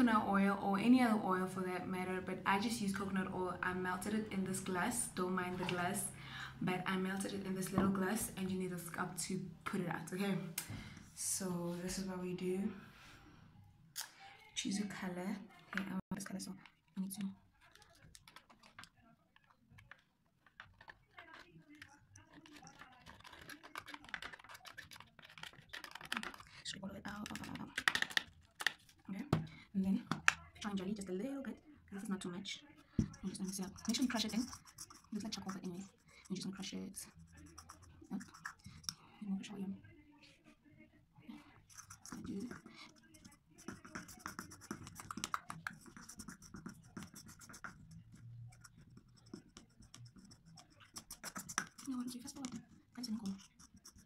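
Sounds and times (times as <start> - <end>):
tool scraping and tapping powder: 17.7 - 26.5, 33.0 - 39.0, 41.7 - 54.0.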